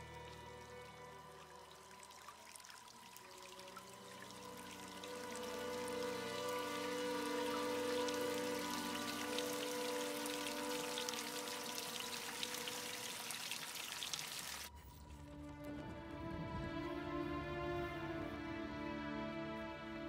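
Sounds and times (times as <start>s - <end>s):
droning music chord: 0.0s - 13.5s, 14.7s - 20.0s
water pouring and splashing: 0.0s - 15.7s.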